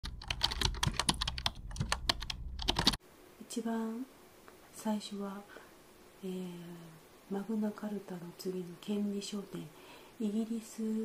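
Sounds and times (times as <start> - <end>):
keyboard typing clicks: 0.0 - 3.0
low steady hum: 0.0 - 11.0.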